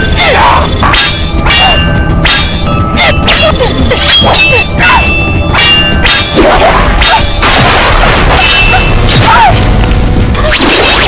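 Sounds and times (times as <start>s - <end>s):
metal blades clashing: 0.0s - 7.6s, 8.4s - 9.2s.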